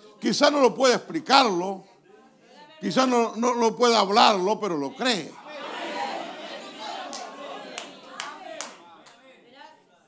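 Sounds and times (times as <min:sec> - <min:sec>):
murmuring voices: 0:02.2 - 0:09.1
sharp handclaps: 0:07.1 - 0:09.2.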